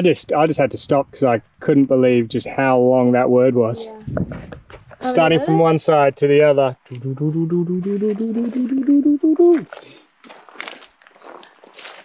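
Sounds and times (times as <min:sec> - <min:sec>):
footsteps on gravel: 0:09.4 - 0:12.0.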